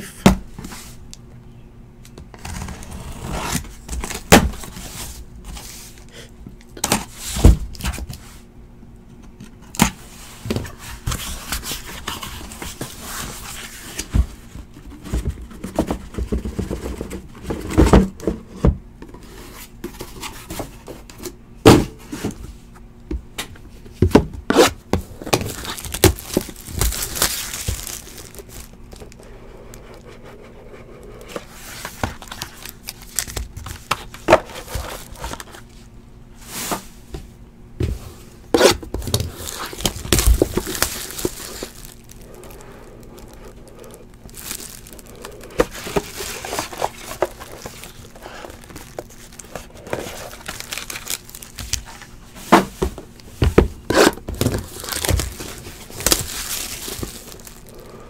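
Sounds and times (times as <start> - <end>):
cardboard scraping: 24.5 - 32.7, 37.8 - 57.9
wrapping crinkling and tearing: 25.1 - 29.3, 31.4 - 35.7, 38.6 - 52.4, 53.1 - 58.0.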